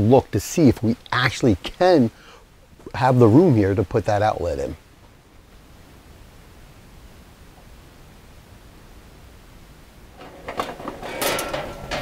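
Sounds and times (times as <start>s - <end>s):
metal scraping: 10.2s - 12.0s
sheet metal cover clanking: 10.2s - 12.0s.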